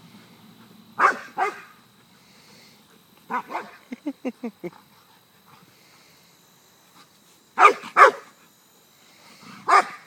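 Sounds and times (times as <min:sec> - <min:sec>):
dog barking: 0:01.0 - 0:01.7, 0:03.3 - 0:03.8, 0:07.6 - 0:08.2, 0:09.7 - 0:10.0.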